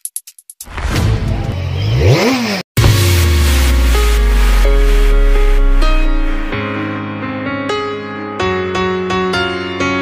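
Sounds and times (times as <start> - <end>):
engine revving: 1.5 - 6.5
electronic dance music: 2.8 - 6.6.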